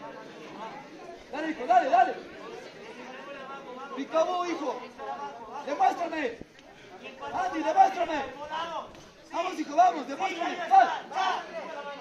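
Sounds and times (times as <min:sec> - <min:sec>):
chatter of voices: 0:00.0 - 0:12.0
loud shout: 0:07.2 - 0:12.0.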